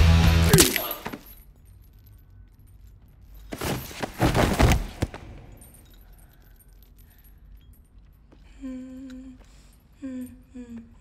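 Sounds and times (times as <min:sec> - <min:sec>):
hanging chain clinking: 0:00.4 - 0:10.6.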